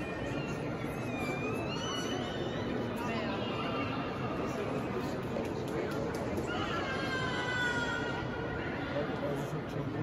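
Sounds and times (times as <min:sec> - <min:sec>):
murmur of voices in echoing hall: 0:00.0 - 0:10.0.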